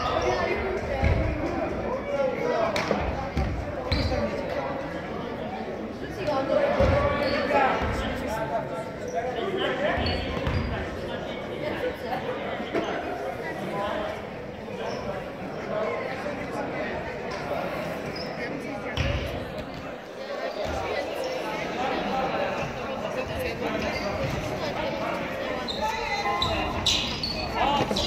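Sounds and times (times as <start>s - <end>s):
voices echoing in hall: 0.0s - 28.0s.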